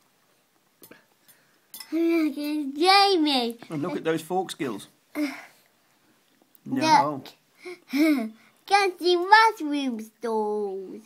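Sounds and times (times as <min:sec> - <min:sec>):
man talking: 0:03.7 - 0:05.0, 0:06.6 - 0:07.4.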